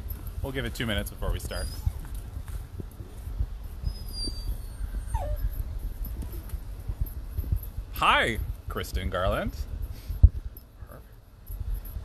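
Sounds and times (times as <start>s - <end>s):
steady low rumble: 0.0s - 12.0s
faint high squeaks: 1.4s - 2.0s, 3.8s - 6.6s
puppy whining: 1.5s - 2.1s, 3.8s - 6.6s.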